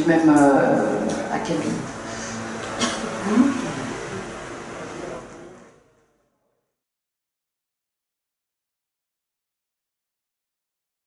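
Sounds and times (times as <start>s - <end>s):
audience murmuring: 0.8s - 5.9s
short rising vocal sound: 1.8s - 5.7s.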